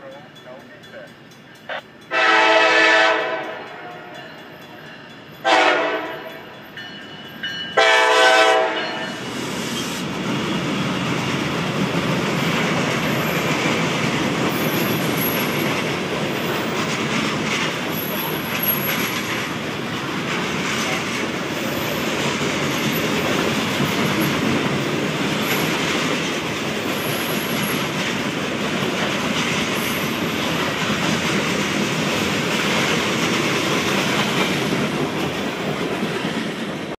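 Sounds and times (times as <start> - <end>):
freight train rolling past: 0.0 - 36.9
locomotive air horn blasts: 2.1 - 4.1, 5.4 - 6.3, 7.8 - 8.9.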